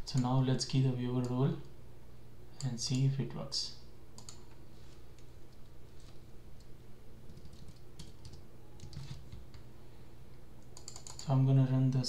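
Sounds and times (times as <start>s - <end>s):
low steady hum: 0.0s - 12.0s
typing on computer keyboard: 4.2s - 4.5s, 7.3s - 9.5s, 10.7s - 11.3s.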